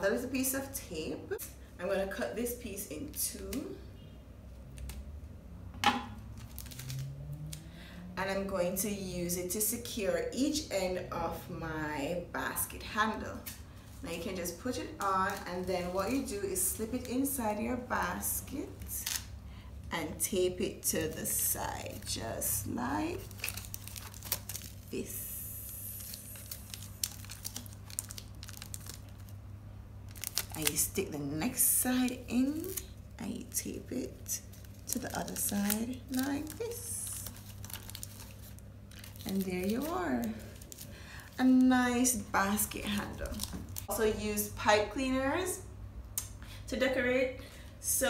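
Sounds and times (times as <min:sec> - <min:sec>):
tape crinkling: 0:04.6 - 0:05.1, 0:06.2 - 0:07.7, 0:13.3 - 0:19.3, 0:20.3 - 0:44.0.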